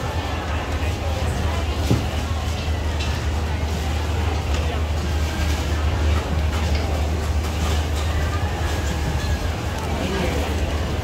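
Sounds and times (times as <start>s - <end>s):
murmur of background voices: 0.0s - 11.0s.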